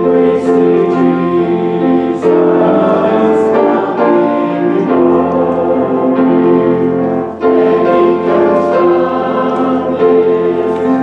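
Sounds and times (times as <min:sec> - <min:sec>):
piano accompaniment: 0:00.0 - 0:11.0
voices singing a hymn: 0:00.0 - 0:11.0.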